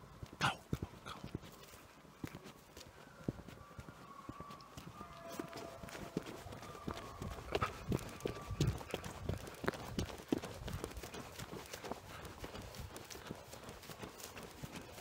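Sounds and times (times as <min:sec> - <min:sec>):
running footsteps on grass: 0:00.0 - 0:15.0.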